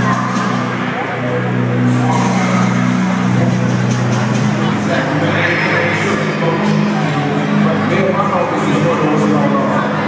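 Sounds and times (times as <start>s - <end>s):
crowd chatter: 0.0s - 10.0s
loud music with heavy bass: 0.0s - 10.0s.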